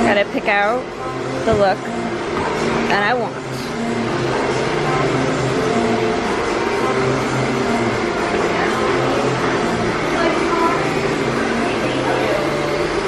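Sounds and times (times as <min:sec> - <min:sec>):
faint music: 0:00.0 - 0:13.0
hair dryers running: 0:00.0 - 0:13.0.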